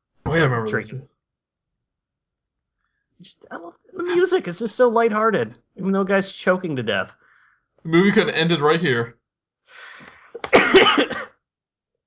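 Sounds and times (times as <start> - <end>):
faint intake of breath: 9.7 - 10.3
man coughing: 9.8 - 11.3.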